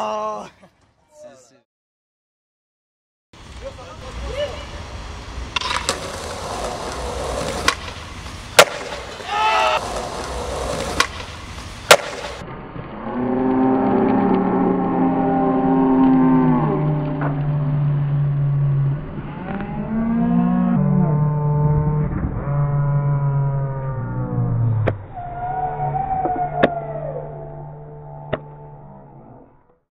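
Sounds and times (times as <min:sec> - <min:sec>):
skateboard landing slap: 0:05.5 - 0:12.4
slow droning music: 0:12.9 - 0:24.9, 0:26.8 - 0:29.8.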